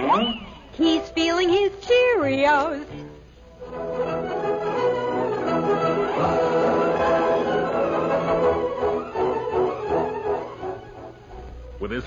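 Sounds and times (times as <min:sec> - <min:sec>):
orchestral music with sustained chords: 0:03.6 - 0:12.0.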